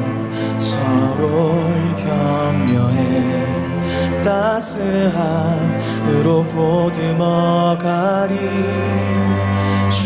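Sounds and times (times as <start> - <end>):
man singing into a microphone: 0.0 - 10.0
sustained instrumental accompaniment: 0.0 - 10.0.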